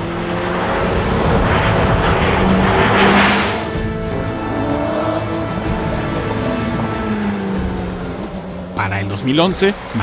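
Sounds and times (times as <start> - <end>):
race car passing at speed: 0.0 - 8.6.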